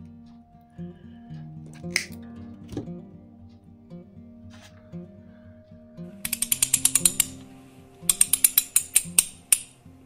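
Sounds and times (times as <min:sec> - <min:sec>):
soft guitar music: 0:00.0 - 0:10.0
ratchet-like mechanical clicking: 0:06.2 - 0:09.8.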